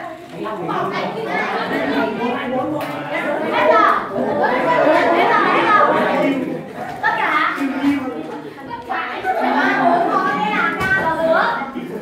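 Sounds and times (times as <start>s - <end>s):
voices talking over one another: 0.7s - 8.2s.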